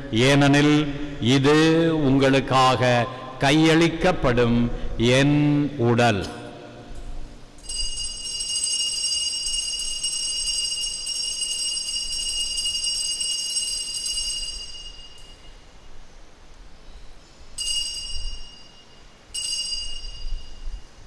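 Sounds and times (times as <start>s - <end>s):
altar bells ringing: 7.6s - 15.8s, 17.6s - 21.0s.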